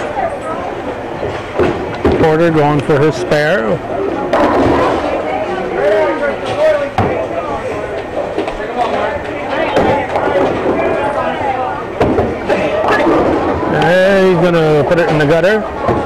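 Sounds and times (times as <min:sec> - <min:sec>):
background voices chattering: 0:00.0 - 0:16.0
bowling balls and pins clattering: 0:04.2 - 0:05.5.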